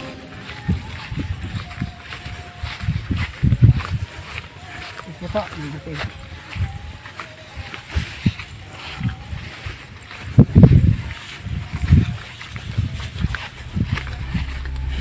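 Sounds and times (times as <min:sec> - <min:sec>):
wind buffeting microphone: 0:00.0 - 0:04.4, 0:07.6 - 0:15.0
steady low hum: 0:13.2 - 0:15.0.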